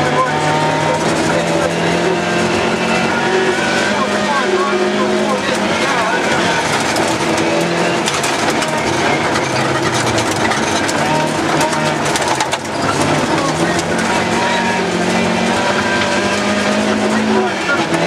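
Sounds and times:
car engine running hard: 0.0s - 18.0s
tyres rushing on gravel: 0.0s - 18.0s.

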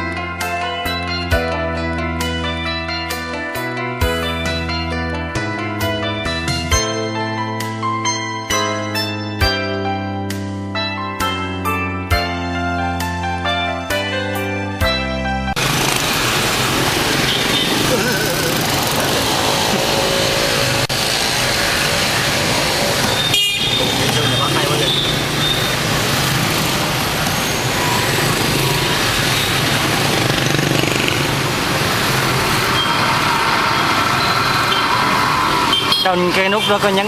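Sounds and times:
road traffic noise: 15.5s - 37.0s
voices: 23.1s - 25.5s.

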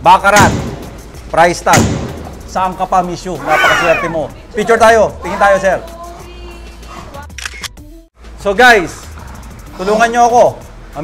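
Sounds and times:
background music: 0.0s - 11.0s
camera shutter click: 7.3s - 7.8s.

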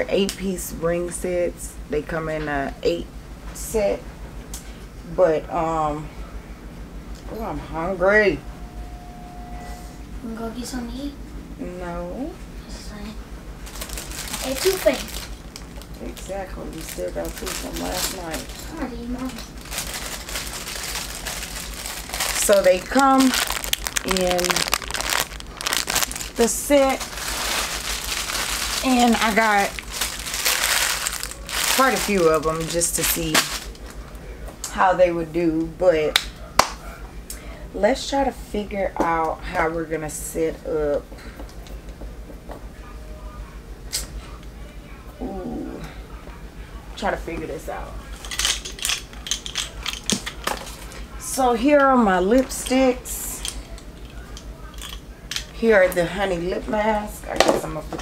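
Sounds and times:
plastic items clicking and rattling: 13.6s - 33.9s, 48.1s - 51.0s, 53.4s - 55.6s
plastic bag crinkling: 13.6s - 34.2s.

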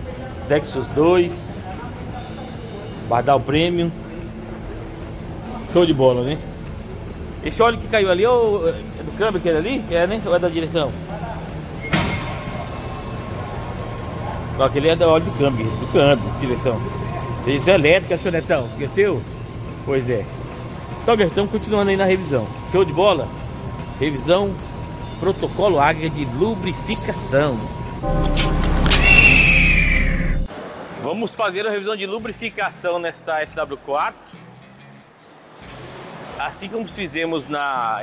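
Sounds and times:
low rumble: 28.0s - 30.5s
falling whistling tone: 28.8s - 30.5s.

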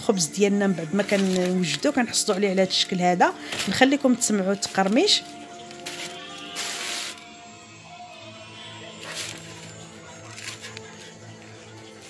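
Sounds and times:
quiet background music: 0.0s - 12.0s
bread crust crackling: 1.0s - 7.2s, 9.0s - 12.0s.

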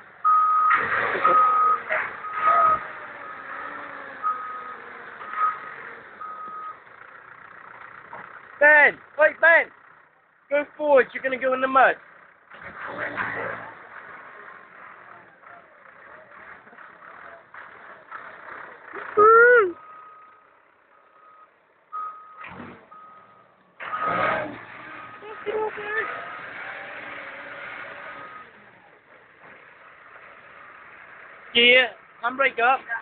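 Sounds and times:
reversing alarm beeping: 0.2s - 3.6s, 4.2s - 6.8s, 19.8s - 24.3s.

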